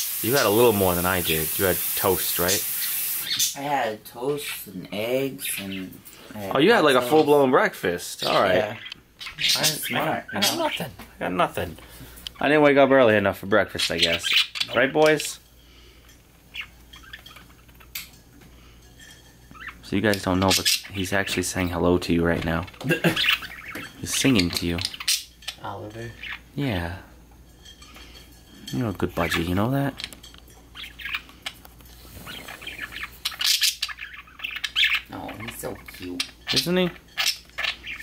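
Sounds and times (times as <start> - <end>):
budgerigar chirping: 30.8 - 31.3, 32.2 - 38.0.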